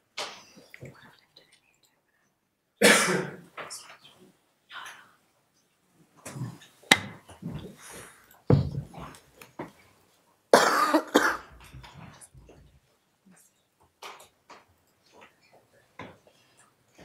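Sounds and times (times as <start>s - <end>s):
person coughing: 2.8s - 3.4s, 10.6s - 11.5s.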